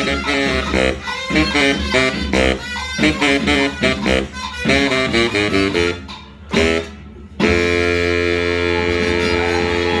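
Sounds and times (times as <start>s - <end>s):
baritone saxophone notes: 0.0s - 10.0s.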